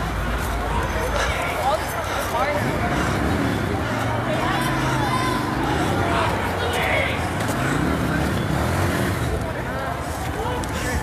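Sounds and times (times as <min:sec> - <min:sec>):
low street rumble: 0:00.0 - 0:11.0
people's voices: 0:00.0 - 0:11.0.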